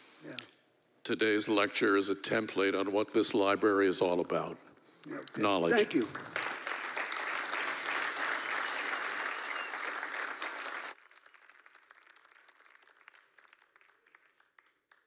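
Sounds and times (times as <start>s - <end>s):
audience applauding: 5.8s - 15.0s.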